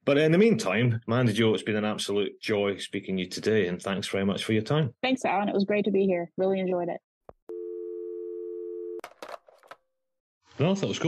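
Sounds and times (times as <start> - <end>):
telephone dial tone: 7.5 - 9.2.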